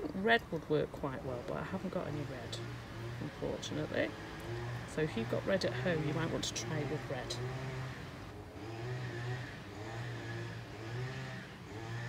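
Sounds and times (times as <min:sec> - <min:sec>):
engine hum: 0:00.0 - 0:12.0.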